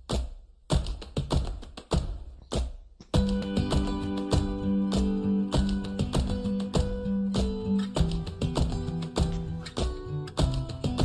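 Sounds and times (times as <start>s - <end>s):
sharp percussive taps: 0.0s - 11.0s.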